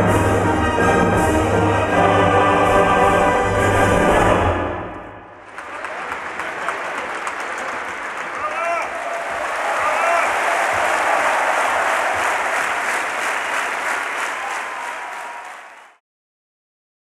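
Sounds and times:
audience applauding: 5.4 - 16.0.

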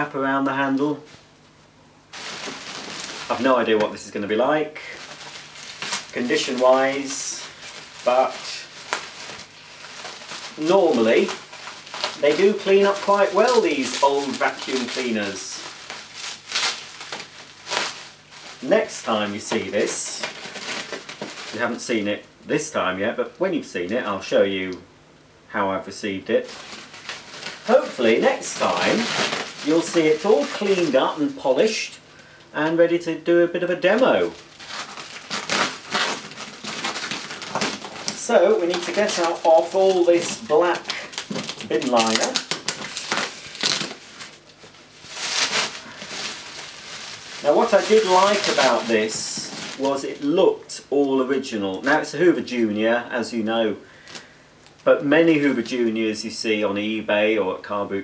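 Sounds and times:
plastic bin liner rustling: 2.1 - 4.2, 4.8 - 21.8, 26.4 - 31.9, 33.8 - 50.4
plastic crinkling: 2.1 - 22.0, 26.4 - 33.0, 33.7 - 52.1, 54.0 - 55.9.

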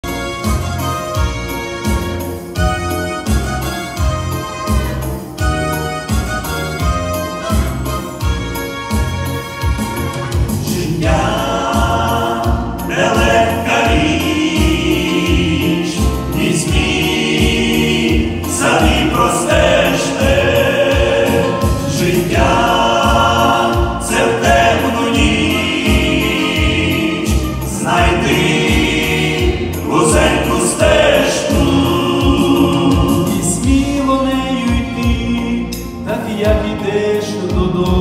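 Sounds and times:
backing music with low beat: 0.0 - 38.0
men's group singing gospel: 10.5 - 38.0.

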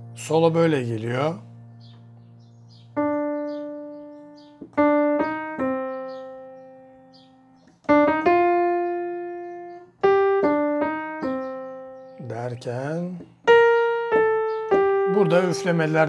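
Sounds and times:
keyboard piano melody: 0.0 - 16.0.

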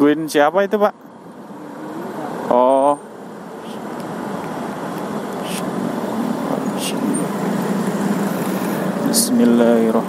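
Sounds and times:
wind and road noise: 0.0 - 10.0
motorcycle engine: 1.2 - 10.0.

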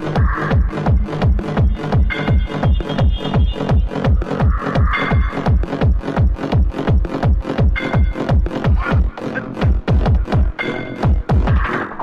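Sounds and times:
fast kick drum: 0.0 - 11.7
layered synth tones: 0.0 - 12.0.

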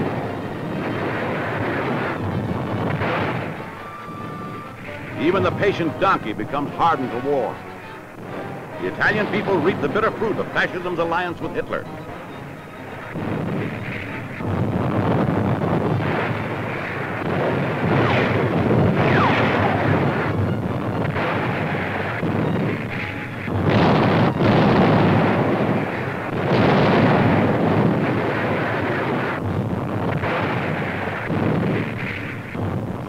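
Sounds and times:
artillery fire and explosions: 0.0 - 33.0
heavy blasts: 0.0 - 33.0.

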